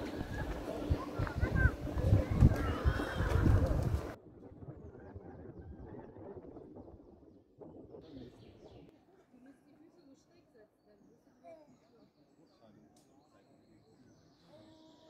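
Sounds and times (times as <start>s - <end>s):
wind buffeting microphone: 0.0s - 8.9s
faint outdoor background: 0.0s - 15.0s.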